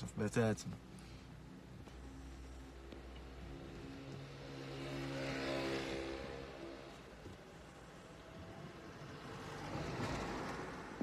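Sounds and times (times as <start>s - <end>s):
car passing close by: 3.2s - 7.0s, 8.2s - 11.0s.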